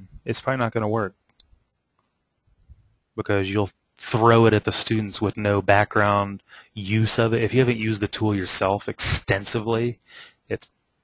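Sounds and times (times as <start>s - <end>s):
person speaking: 0.0s - 1.1s, 3.2s - 10.6s.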